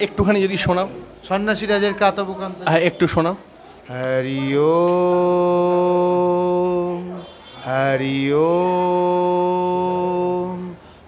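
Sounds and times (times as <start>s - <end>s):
man chanting a hymn: 3.9s - 11.0s.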